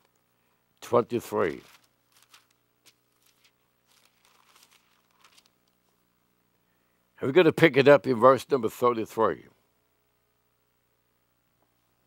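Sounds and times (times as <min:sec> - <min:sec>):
book pages turning: 0:01.4 - 0:05.9.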